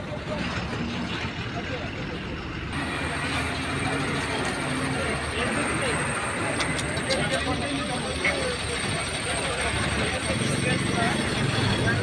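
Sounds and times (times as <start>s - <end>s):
highway traffic: 0.0s - 12.0s
people's voices: 0.0s - 12.0s.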